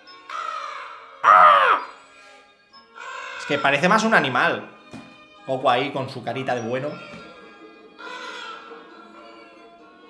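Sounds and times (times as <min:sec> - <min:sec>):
soft film score music: 0:00.0 - 0:10.0
cartoon dragon cry: 0:01.2 - 0:02.0.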